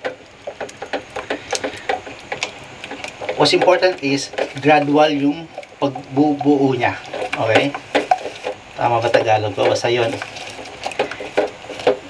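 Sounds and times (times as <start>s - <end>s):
spatula scraping a saucepan: 0.5s - 12.0s.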